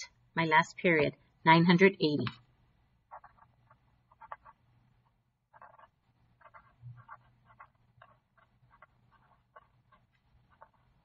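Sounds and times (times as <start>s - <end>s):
pen scratching on paper: 3.0s - 11.0s.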